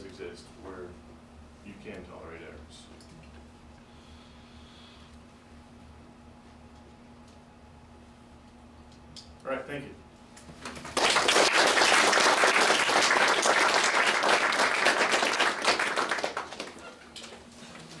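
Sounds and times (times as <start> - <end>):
audience applauding: 10.8 - 17.1.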